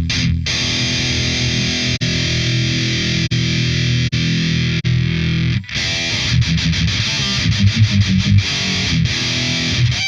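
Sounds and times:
distorted electric guitar chords: 0.0s - 10.0s.

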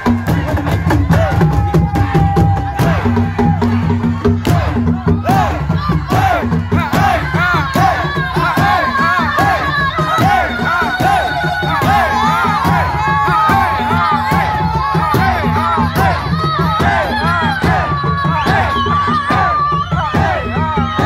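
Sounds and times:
crowd shouting and cheering: 0.0s - 21.0s
rhythmic drumming: 0.0s - 21.0s.

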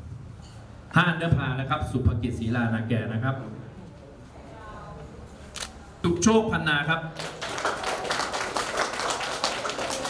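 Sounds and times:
camera shutter click: 5.5s - 5.8s.

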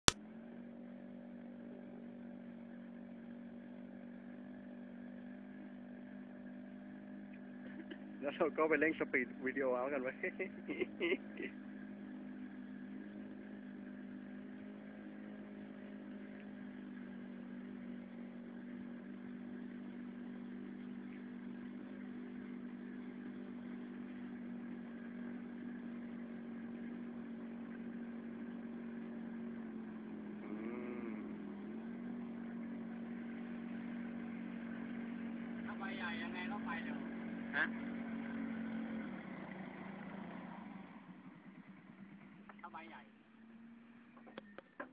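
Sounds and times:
motorcycle engine running: 0.0s - 44.9s.

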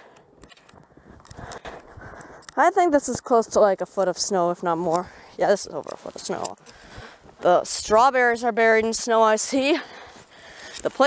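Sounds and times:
footsteps crunching through snow: 3.1s - 8.1s.

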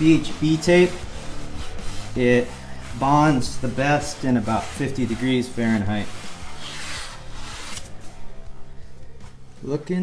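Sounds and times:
hands rubbing on solar panel: 0.0s - 8.0s
faint music: 0.0s - 10.0s.

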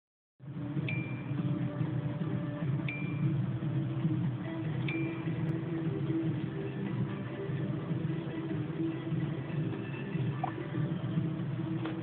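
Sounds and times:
background music: 0.4s - 12.0s.

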